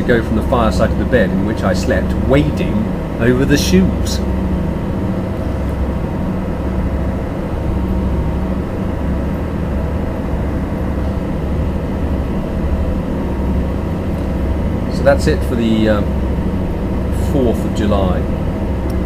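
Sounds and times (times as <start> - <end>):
ferry engine droning: 0.0 - 19.0.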